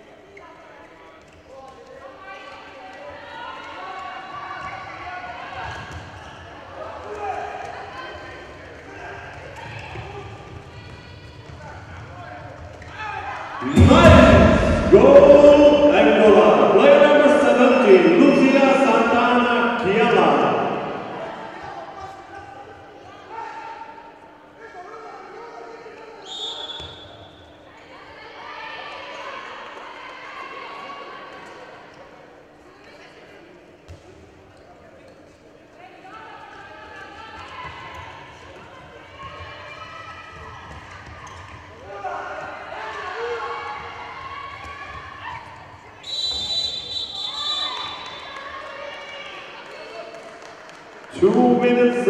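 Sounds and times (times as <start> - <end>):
players calling out: 13.6 - 21.6
referee's whistle: 26.2 - 27.4, 46.0 - 48.3.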